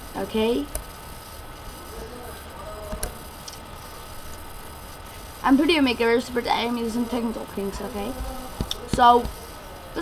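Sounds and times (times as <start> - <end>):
microphone hiss and hum: 0.0 - 10.0.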